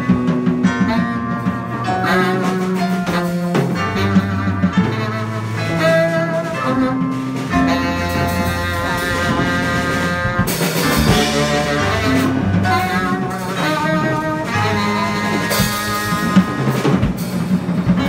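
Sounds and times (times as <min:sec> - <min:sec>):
bass line: 0:00.0 - 0:18.0
drum kit: 0:00.0 - 0:18.0
electric guitar: 0:00.0 - 0:18.0
long held notes: 0:03.2 - 0:16.9.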